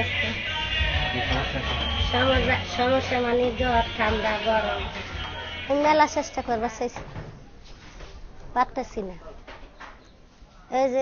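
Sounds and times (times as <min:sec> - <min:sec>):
woman talking: 0:05.7 - 0:07.0, 0:08.6 - 0:09.3.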